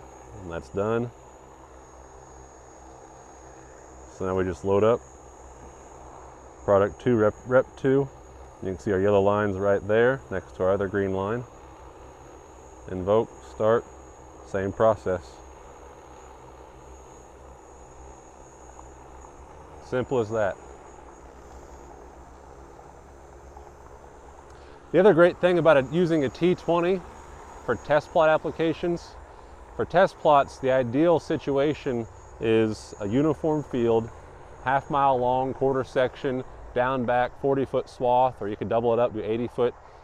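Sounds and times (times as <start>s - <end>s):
drone rotors humming: 0.0s - 40.0s
high-pitched whine: 0.0s - 40.0s.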